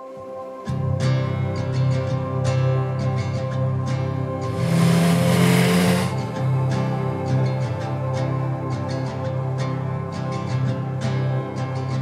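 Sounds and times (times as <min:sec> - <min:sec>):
background music: 0:00.0 - 0:12.0
motorcycle engine revving past: 0:04.5 - 0:06.4.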